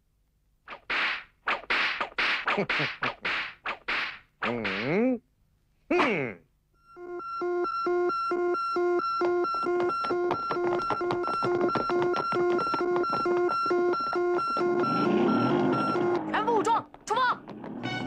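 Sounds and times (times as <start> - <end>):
cartoon alarm beeping: 6.8 - 16.7.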